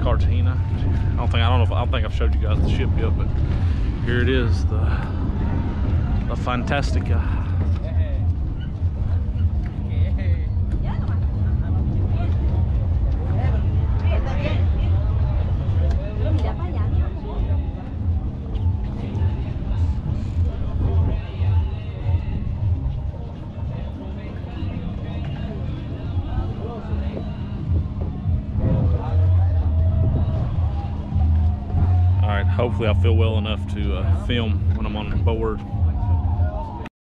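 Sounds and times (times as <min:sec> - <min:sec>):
people talking: 0:00.0 - 0:03.4, 0:04.0 - 0:05.2, 0:06.2 - 0:08.3, 0:31.9 - 0:35.7
steady low hum and rumble: 0:00.0 - 0:36.9.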